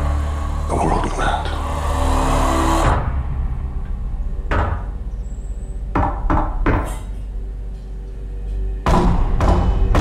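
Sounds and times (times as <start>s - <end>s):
knock on wooden door: 5.9s - 7.1s.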